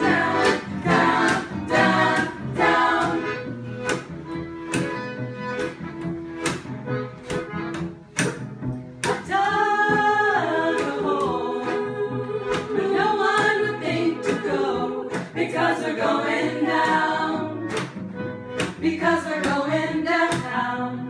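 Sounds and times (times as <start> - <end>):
women singing together: 0.0 - 3.4, 9.0 - 17.7, 18.7 - 21.0
accordion: 0.0 - 21.0
acoustic guitar: 0.0 - 21.0
cello: 0.0 - 21.0
sharp knocks: 3.8 - 9.3.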